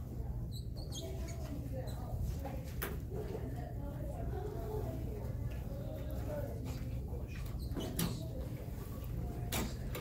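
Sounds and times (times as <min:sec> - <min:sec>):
low room hum: 0:00.0 - 0:10.0
marker squeaking on whiteboard: 0:00.5 - 0:02.2, 0:07.3 - 0:08.4.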